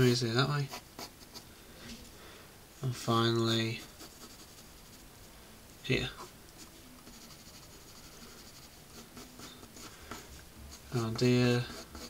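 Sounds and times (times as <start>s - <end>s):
pencil scratching on paper: 3.8s - 5.0s, 7.0s - 12.0s.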